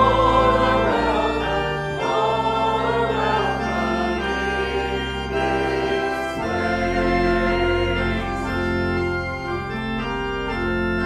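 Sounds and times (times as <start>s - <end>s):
church organ playing a hymn: 0.0s - 11.0s.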